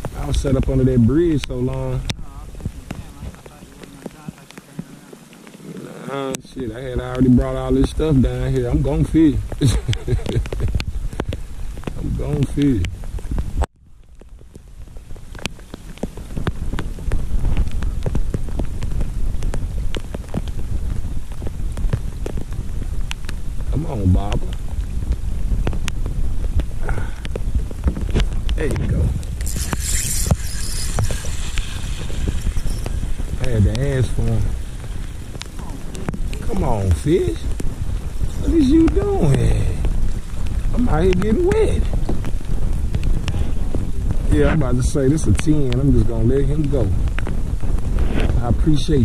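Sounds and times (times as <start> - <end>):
rain drops ticking: 0.0 - 49.0
low rumble: 16.2 - 49.0
high hiss: 28.6 - 42.0.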